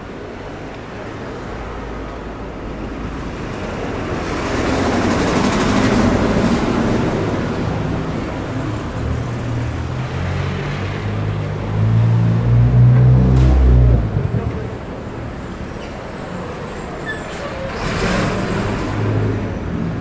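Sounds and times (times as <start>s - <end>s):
large vehicle engine drone: 0.0s - 20.0s.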